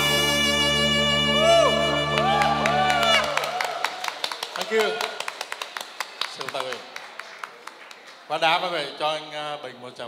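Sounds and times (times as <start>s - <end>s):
scattered hand clapping: 2.2s - 8.3s.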